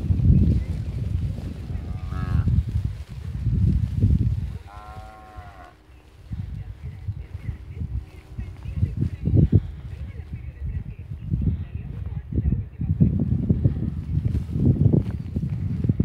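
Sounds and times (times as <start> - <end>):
wind buffeting microphone: 0.0 - 16.0
calves mooing: 1.6 - 2.6, 4.5 - 6.0.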